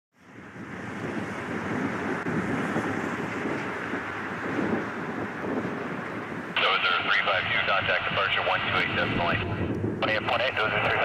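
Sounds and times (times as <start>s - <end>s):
wind buffeting microphone: 0.2s - 11.0s.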